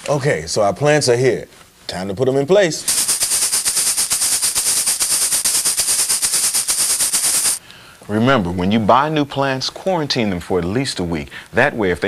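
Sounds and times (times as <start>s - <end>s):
rapid rattle of sharp clicks: 2.9s - 7.6s.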